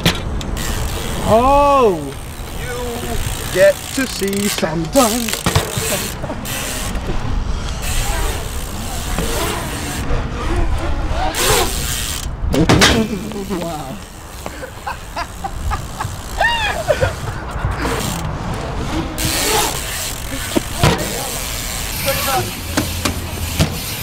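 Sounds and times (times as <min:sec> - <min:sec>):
bike hub ticking: 0:00.0 - 0:10.1, 0:11.3 - 0:12.4, 0:13.2 - 0:18.6, 0:19.2 - 0:24.0
bike tyres rolling on concrete: 0:00.0 - 0:24.0
people shouting: 0:16.3 - 0:17.0.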